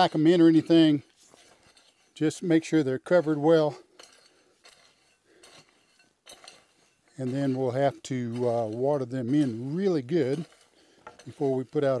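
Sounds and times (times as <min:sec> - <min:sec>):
hoe scraping gritty soil: 0:00.0 - 0:12.0.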